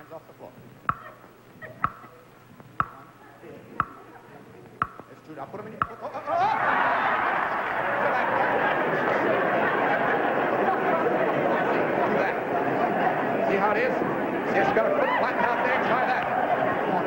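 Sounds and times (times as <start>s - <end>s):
countdown clock ticking loudly: 1.8s - 2.1s, 2.8s - 3.2s, 3.8s - 4.0s, 4.8s - 5.2s, 5.8s - 6.1s
audience laughing: 6.0s - 17.0s.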